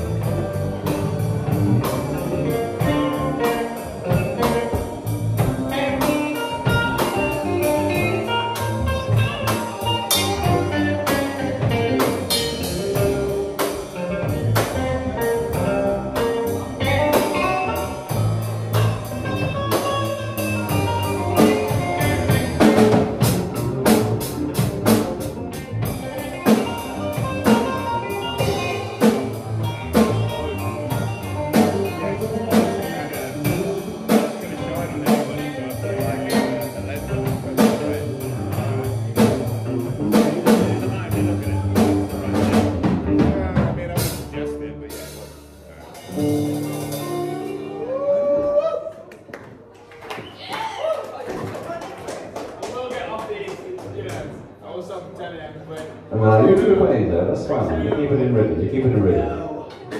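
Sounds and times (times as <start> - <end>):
steady drum beat: 0.0 - 47.7
live band playing: 0.0 - 52.6.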